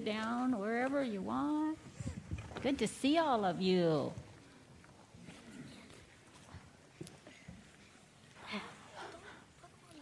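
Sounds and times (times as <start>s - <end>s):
faint murmur of voice: 5.2s - 10.0s.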